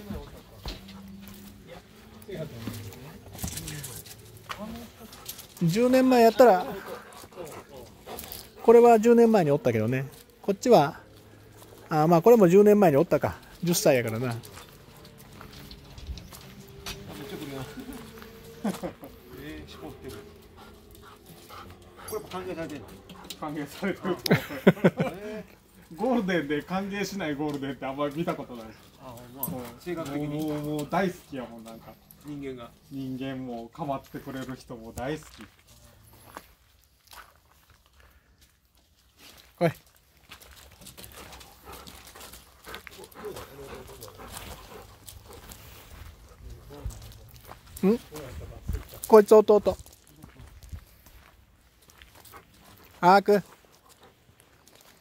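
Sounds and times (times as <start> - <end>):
dog panting softly: 4.9 - 9.2, 19.6 - 24.1, 40.7 - 47.5, 51.8 - 55.0
dog breathing: 20.0 - 23.4, 41.1 - 46.5
crunches on gravel: 35.0 - 55.0.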